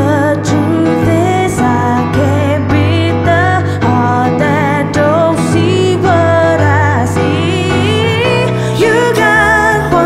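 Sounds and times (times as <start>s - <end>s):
keyboard chords: 0.0s - 10.0s
woman singing with vibrato: 0.0s - 10.0s.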